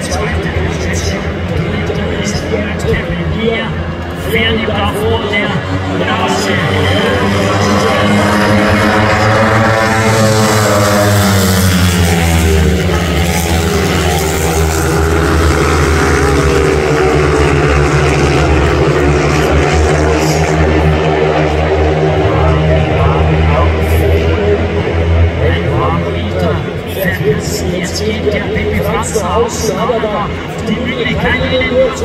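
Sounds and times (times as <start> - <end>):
racing motorcycles at full throttle: 0.0 - 32.0.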